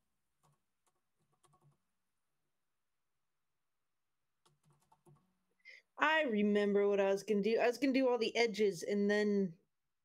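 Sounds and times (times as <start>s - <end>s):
faint keyboard typing: 0.4s - 2.0s, 4.4s - 5.4s.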